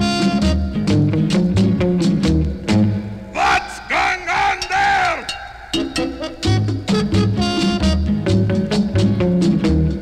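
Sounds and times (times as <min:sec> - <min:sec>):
swing band playing: 0:00.0 - 0:02.8, 0:05.8 - 0:10.0
voices yelling together: 0:03.3 - 0:06.0.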